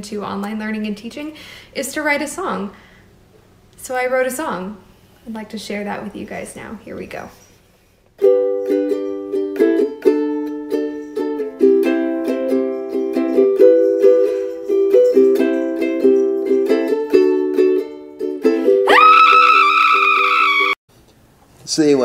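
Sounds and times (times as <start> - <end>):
ukulele strumming chords: 8.2 - 18.9
high-pitched voice crying out: 18.9 - 20.8.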